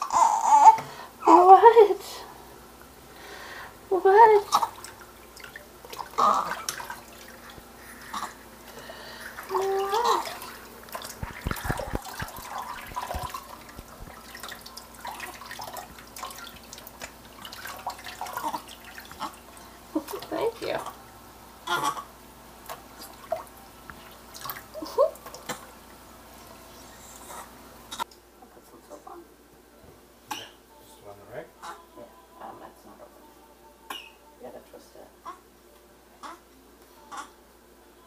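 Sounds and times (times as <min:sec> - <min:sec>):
baby vocalizations: 0:00.0 - 0:01.5, 0:06.0 - 0:06.9, 0:09.4 - 0:10.6, 0:18.2 - 0:19.4, 0:21.6 - 0:22.1, 0:36.2 - 0:36.4, 0:37.0 - 0:37.4
water splashing and dripping: 0:04.4 - 0:07.7, 0:09.4 - 0:21.0, 0:22.6 - 0:26.0.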